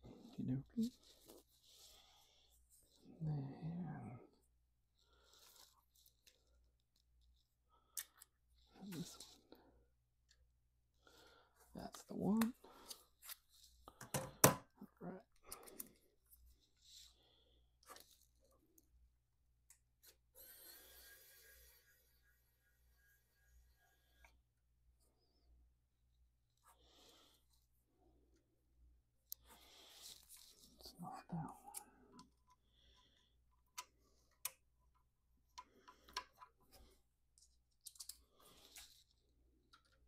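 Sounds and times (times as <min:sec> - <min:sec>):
plastic clicks and handling: 0:33.6 - 0:40.0.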